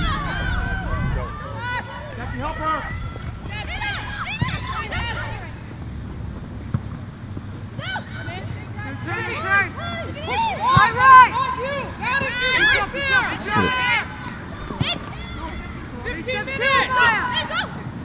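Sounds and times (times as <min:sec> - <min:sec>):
voices calling out and talking: 0:00.0 - 0:18.0.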